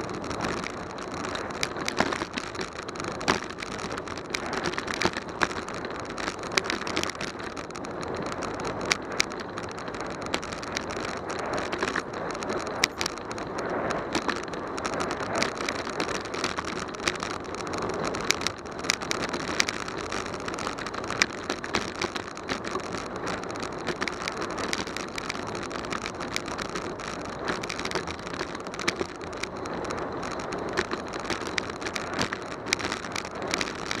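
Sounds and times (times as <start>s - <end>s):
bicycle clicks and rattles: 0.0s - 34.0s
wind and tyre noise: 0.0s - 34.0s.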